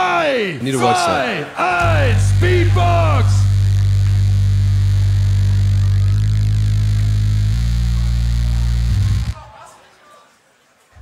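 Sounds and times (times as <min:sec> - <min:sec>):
beatboxer vocal bass drone: 0:01.7 - 0:09.4.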